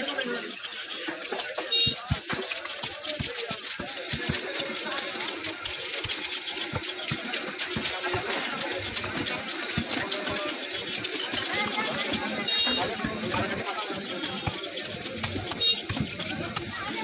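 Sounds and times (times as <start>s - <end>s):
knife scraping fish scales: 2.0s - 16.7s.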